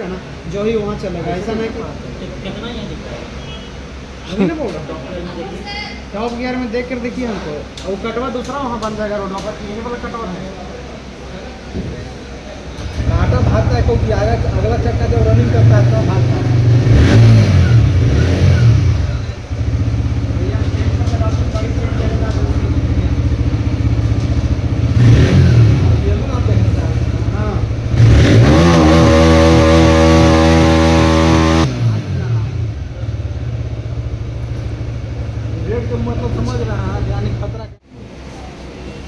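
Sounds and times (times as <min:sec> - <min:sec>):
motorcycle engine idling and revving: 0:12.8 - 0:37.8.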